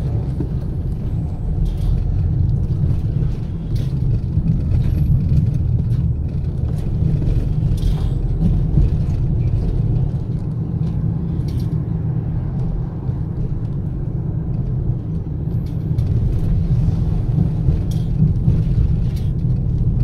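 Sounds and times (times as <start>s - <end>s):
car engine and tyres rumbling: 0.0s - 20.0s.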